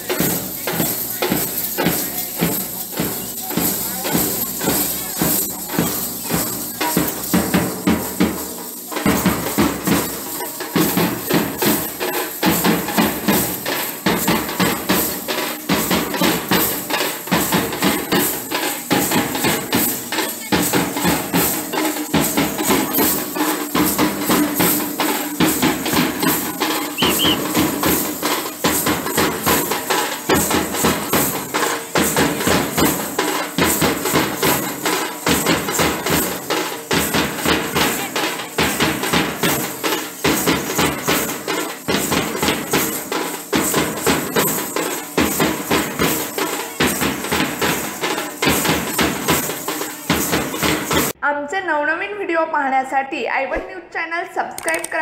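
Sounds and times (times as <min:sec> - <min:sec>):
jingles clashing: 0:00.0 - 0:51.2
procession drumming: 0:00.0 - 0:51.2.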